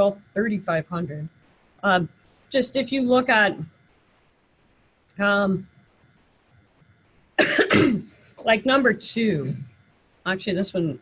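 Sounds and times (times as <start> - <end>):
woman coughing: 7.4 - 8.1.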